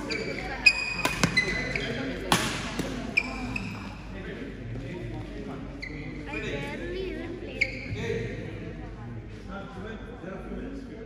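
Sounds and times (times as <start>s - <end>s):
shoes squeaking on court: 0.0s - 4.1s, 5.5s - 6.8s, 7.4s - 8.0s
racket hitting shuttlecock: 0.6s - 3.3s.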